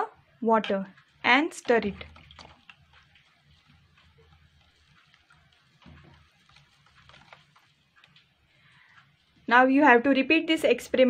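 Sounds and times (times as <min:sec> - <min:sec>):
spoon stirring in plastic cup: 0:00.6 - 0:09.5.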